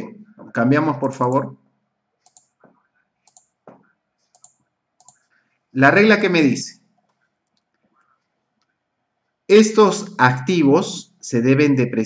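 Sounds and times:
faint computer clicks: 2.2s - 5.4s.

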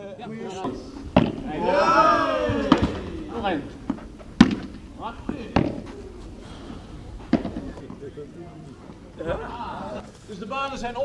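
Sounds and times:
padel ball knocks: 1.1s - 1.6s, 2.5s - 6.0s.

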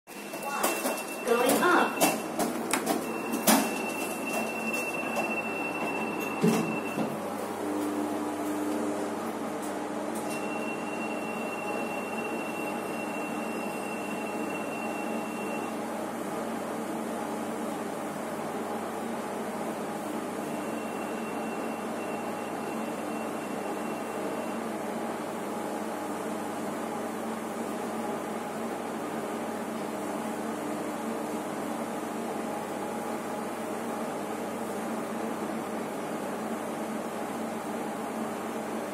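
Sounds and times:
voices: 0.4s - 2.0s.

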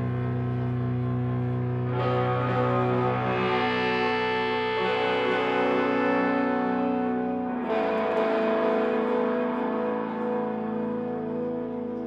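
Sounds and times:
guitars holding sustained chords: 0.0s - 12.0s.

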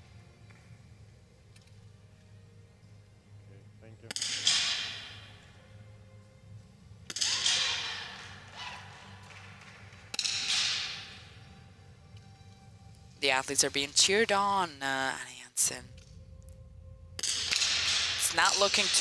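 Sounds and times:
rifle shots ringing indoors: 17.2s - 18.6s.

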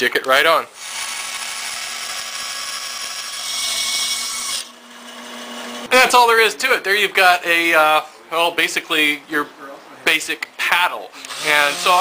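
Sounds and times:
bandsaw cutting wood: 0.8s - 5.9s, 11.2s - 12.0s.

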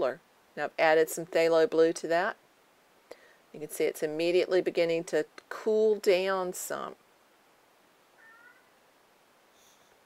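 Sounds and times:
faint high-pitched squeak: 8.2s - 8.7s.

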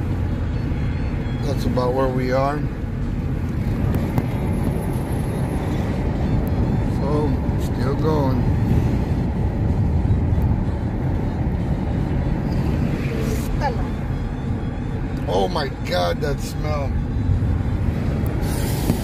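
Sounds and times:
car road and wind noise: 0.0s - 19.0s.

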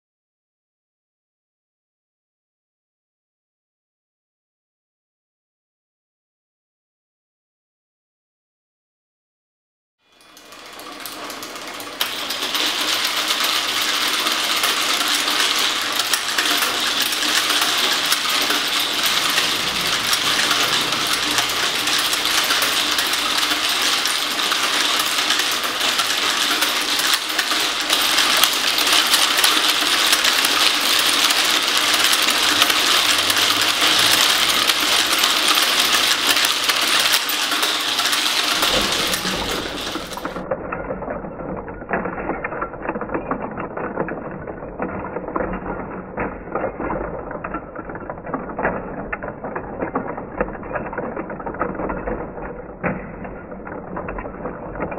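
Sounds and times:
small balls clattering through tubes: 10.3s - 54.9s.

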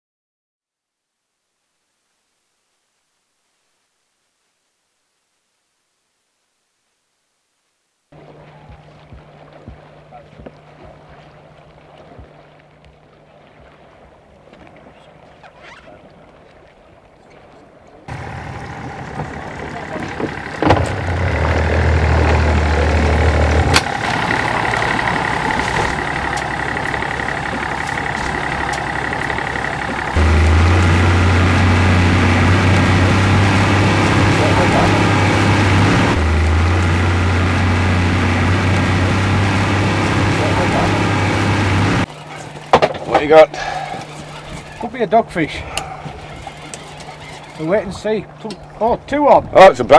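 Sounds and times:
motor boat engine droning: 8.2s - 15.4s, 18.0s - 49.9s.

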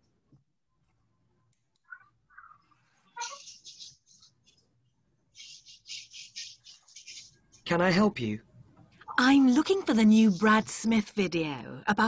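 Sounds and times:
faint bird chirping: 0.7s - 7.8s.

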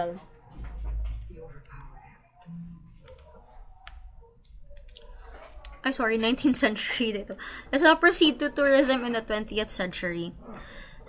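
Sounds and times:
faint low hum: 0.0s - 11.0s
computer mouse clicks: 3.0s - 5.8s.

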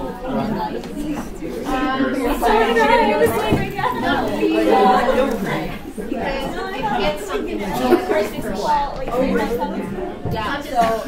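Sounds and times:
students chatting: 0.0s - 11.0s.

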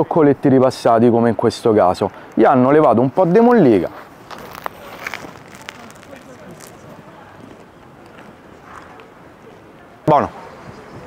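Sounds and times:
faint voices: 1.6s - 11.0s
chewing crusty bread: 3.6s - 9.1s.

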